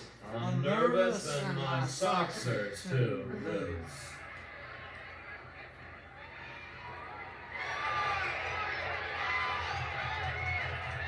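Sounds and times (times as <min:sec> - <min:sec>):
children shouting through tv speakers: 0:03.9 - 0:11.0.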